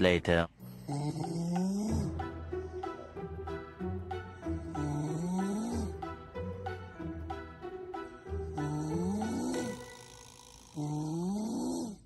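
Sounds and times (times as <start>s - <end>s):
lion roar: 4.7s - 6.0s, 8.6s - 10.0s, 10.6s - 12.0s.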